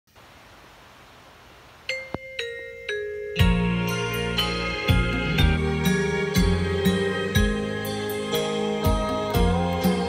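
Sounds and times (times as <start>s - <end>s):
faint steady hiss: 0.1s - 10.0s.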